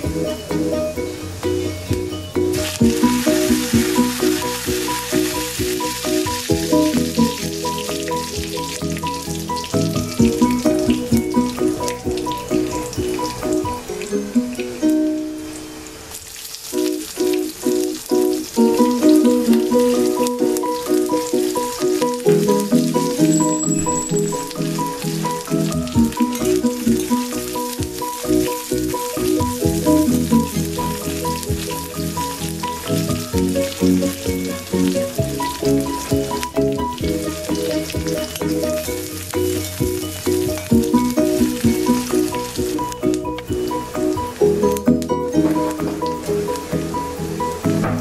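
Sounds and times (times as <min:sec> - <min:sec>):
background music with repeating notes: 0:00.0 - 0:15.9, 0:16.8 - 0:48.0
onion sizzling in hot oil: 0:00.0 - 0:48.0.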